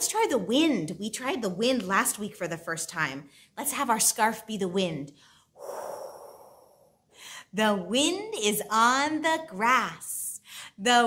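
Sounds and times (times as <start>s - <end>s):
woman blowing like wind: 5.6s - 7.0s.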